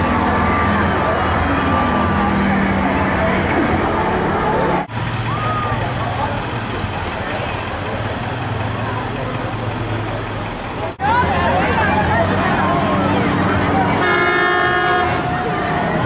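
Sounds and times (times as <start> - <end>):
crowd noise: 0.0 - 16.0
street noise: 0.0 - 16.0
vehicle engine humming: 0.0 - 16.0.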